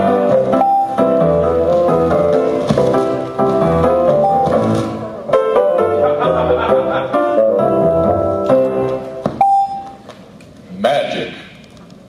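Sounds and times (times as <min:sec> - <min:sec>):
music: 0:00.0 - 0:10.0
steady electronic beep: 0:00.6 - 0:01.1, 0:04.1 - 0:04.6, 0:09.4 - 0:10.0.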